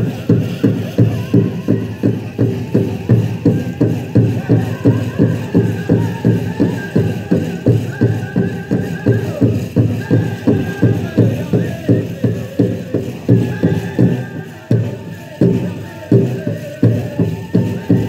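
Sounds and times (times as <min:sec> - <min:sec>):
voices singing long held notes: 0:00.0 - 0:18.0.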